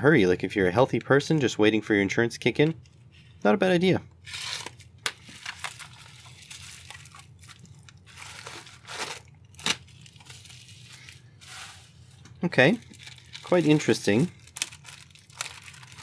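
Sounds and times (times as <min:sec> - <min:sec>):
plastic tearing and crinkling: 0:04.2 - 0:16.0
knife slitting plastic mailer: 0:08.1 - 0:10.4, 0:13.0 - 0:16.0.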